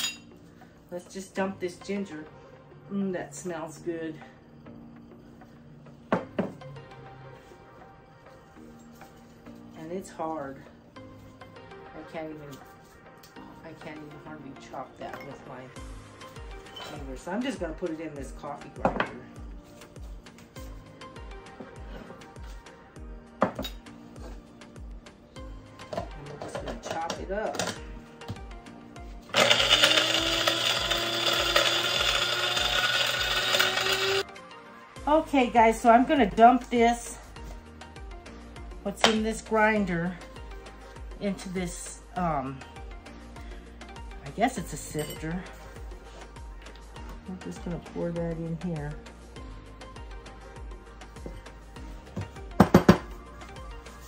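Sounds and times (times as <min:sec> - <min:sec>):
soft background music: 0:00.0 - 0:54.0
electric coffee grinder whirring: 0:29.3 - 0:34.2
knocks on coffee grinder: 0:52.6 - 0:53.1.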